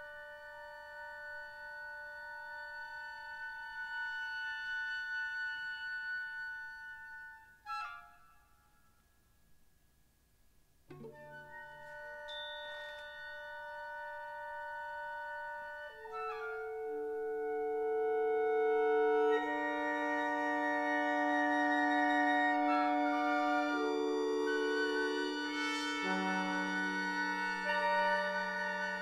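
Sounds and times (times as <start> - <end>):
chamber ensemble of strings and winds: 11.9 - 29.0.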